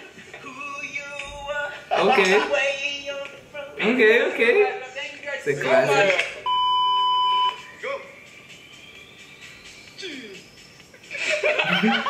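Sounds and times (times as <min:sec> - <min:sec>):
steady electronic bleep: 0:06.5 - 0:07.7.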